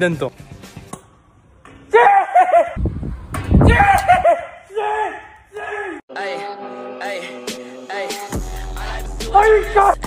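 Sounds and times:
young man shouting excitedly: 1.9s - 2.8s, 3.6s - 6.0s, 9.2s - 10.0s.

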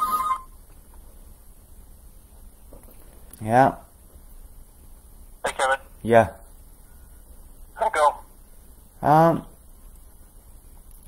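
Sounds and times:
telephone ringing electronic tone: 0.0s - 0.5s
faint room noise: 0.0s - 11.0s.

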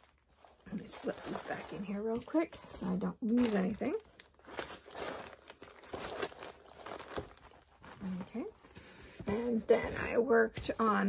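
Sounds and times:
bag crinkling and rustling: 0.0s - 10.1s.

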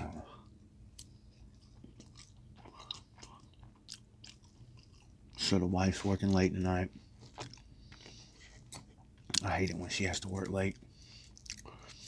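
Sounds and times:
quiet chewing: 0.2s - 12.0s.

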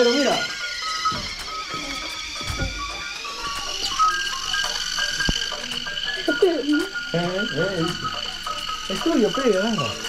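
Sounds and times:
steady high whine: 0.0s - 10.0s
toy ball electronic tune: 0.0s - 10.0s.

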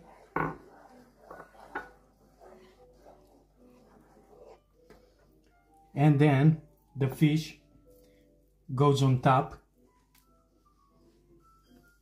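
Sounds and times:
wooden spoon stirring sauce in pan: 0.0s - 8.3s.

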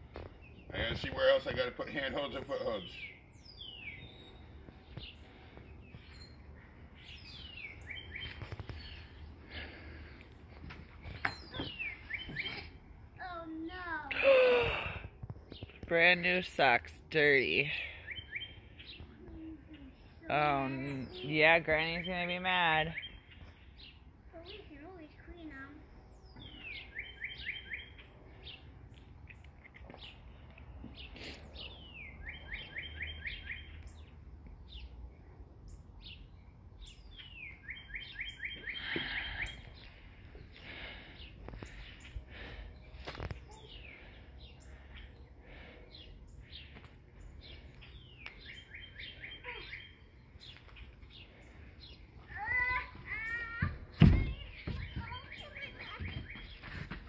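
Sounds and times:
songbird singing: 0.0s - 57.0s.

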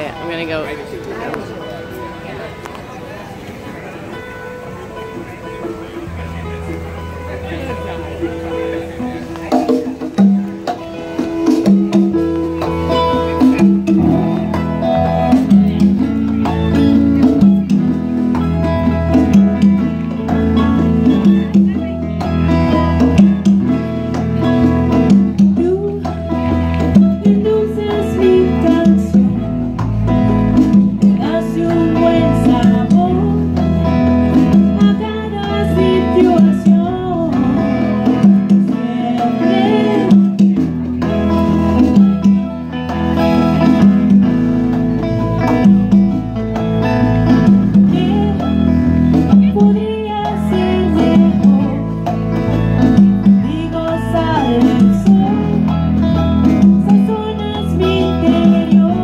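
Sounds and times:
congas: 0.0s - 59.0s
latin band playing: 0.0s - 59.0s
woman singing: 25.6s - 29.7s, 31.0s - 33.6s, 34.4s - 40.6s, 47.8s - 52.2s, 53.2s - 59.0s.

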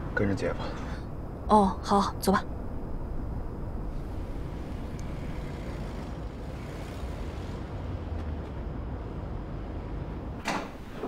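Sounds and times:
car engine and tyre rumble: 2.5s - 11.0s.

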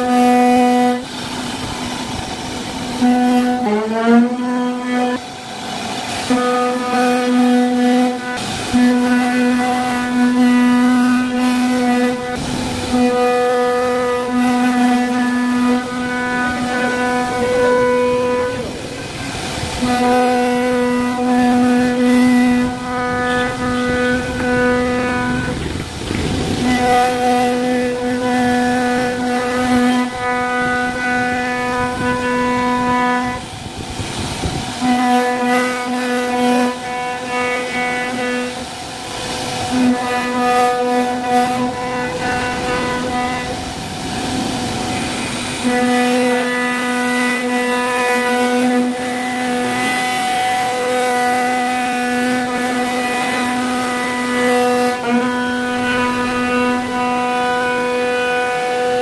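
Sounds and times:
router bit cutting wood: 0.0s - 59.0s.

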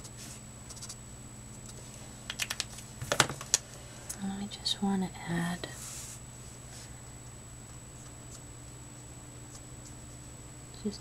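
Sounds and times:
faint steady hum: 0.0s - 11.0s
plastic marker caps clicking: 2.3s - 3.6s.

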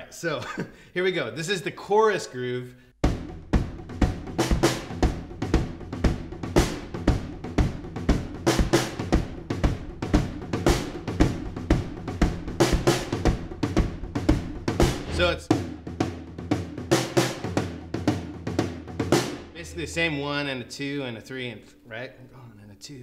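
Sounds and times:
bass drum: 3.0s - 20.2s
tom pattern: 3.0s - 22.6s.

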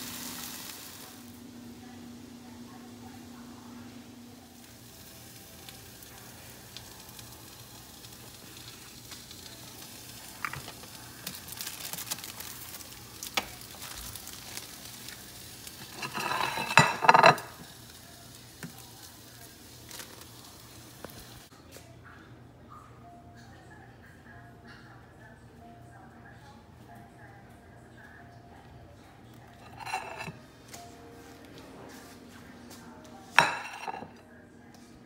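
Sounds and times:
food sizzling in frying pan: 0.0s - 21.5s.

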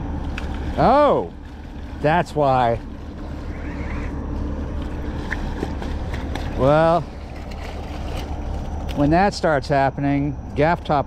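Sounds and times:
ship engine drone: 0.0s - 11.0s.

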